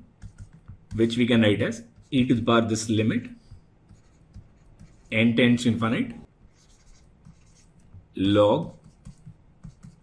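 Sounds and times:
stylus tapping: 0:00.0 - 0:02.3, 0:03.4 - 0:05.2, 0:06.2 - 0:10.0
stylus scratching on tablet: 0:00.0 - 0:10.0.

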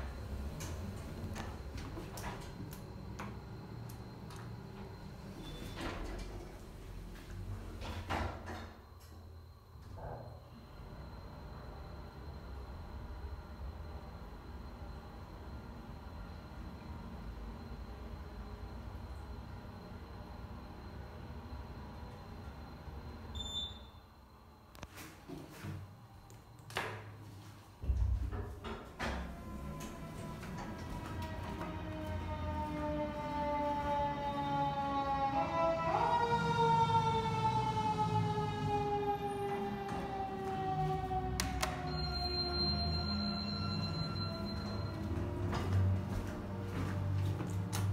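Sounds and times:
low rumble of elevator car: 0:00.0 - 0:23.8, 0:27.8 - 0:47.9
elevator arrival beep: 0:00.0 - 0:24.4, 0:39.1 - 0:47.3.

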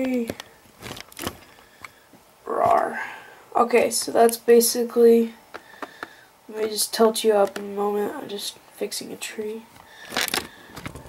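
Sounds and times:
rustling: 0:00.0 - 0:04.4, 0:09.7 - 0:11.0.

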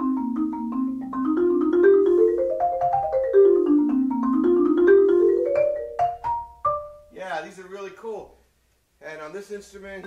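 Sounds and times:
marimba notes: 0:00.0 - 0:07.2
man's voice: 0:09.0 - 0:10.0.

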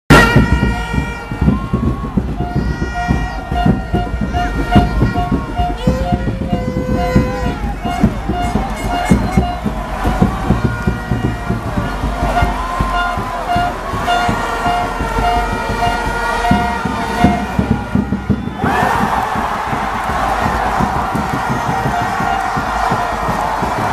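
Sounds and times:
crowd noise: 0:00.1 - 0:23.9
plastic stadium horns blowing: 0:00.1 - 0:23.9
rhythmic low thumps: 0:00.1 - 0:23.9
people clapping: 0:00.2 - 0:23.9.

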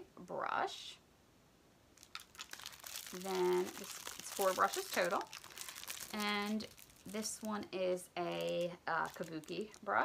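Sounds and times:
plastic crinkling rustle: 0:02.0 - 0:10.0.

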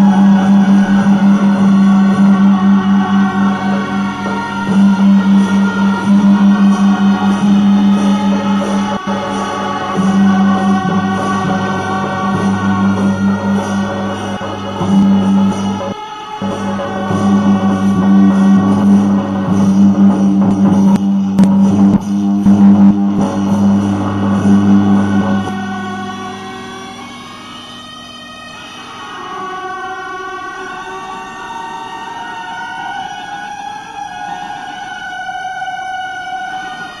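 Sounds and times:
struck percussion: 0:00.0 - 0:26.6
wind instruments held tones: 0:00.0 - 0:37.0.

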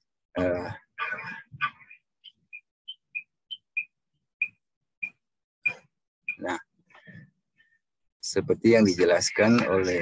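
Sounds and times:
small bird chirping: 0:01.6 - 0:06.6.

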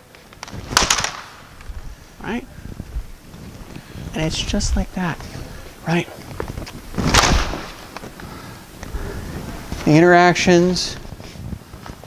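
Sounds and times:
practice swords striking: 0:00.6 - 0:01.5.

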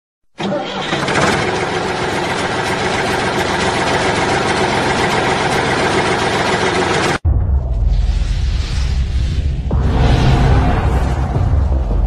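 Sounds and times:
tractor engine starting and running: 0:00.3 - 0:07.2.

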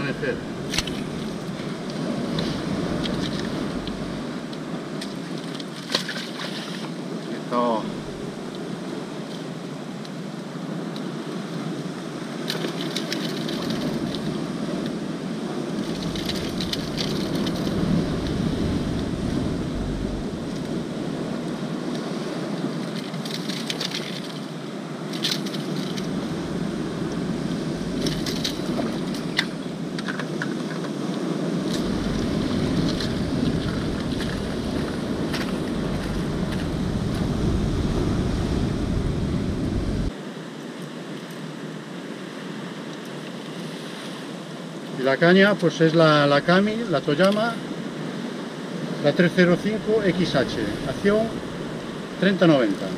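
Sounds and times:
wind gusting on microphone: 0:00.0 - 0:05.8, 0:06.8 - 0:40.2, 0:46.0 - 0:52.9
surf: 0:00.0 - 0:52.9.

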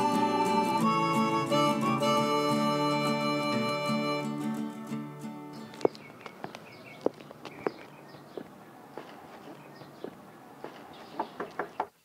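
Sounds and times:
footsteps: 0:04.0 - 0:11.7.

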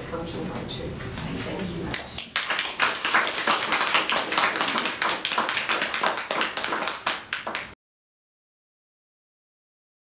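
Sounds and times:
people applauding: 0:02.1 - 0:07.8.

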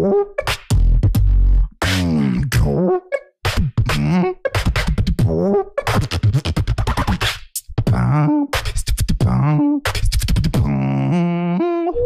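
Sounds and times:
low bass: 0:00.0 - 0:03.0, 0:07.7 - 0:11.8
beatboxing mouth percussion: 0:00.0 - 0:12.0
held vocal note: 0:10.6 - 0:12.0.

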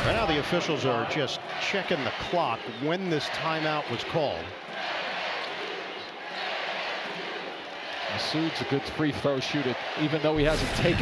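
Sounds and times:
crowd din of voices: 0:00.0 - 0:11.0.

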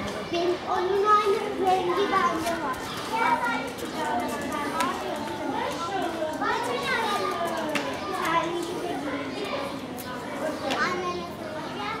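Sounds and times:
children calling out and chattering: 0:00.0 - 0:12.0.

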